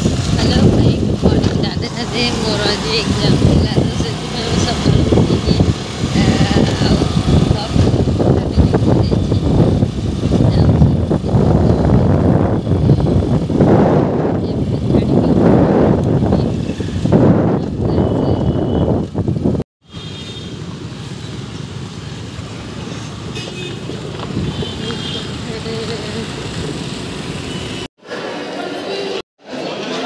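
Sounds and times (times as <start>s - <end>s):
wind buffeting microphone: 0.0s - 19.6s, 23.8s - 27.0s
road noise: 0.0s - 30.0s
street traffic noise: 0.0s - 30.0s.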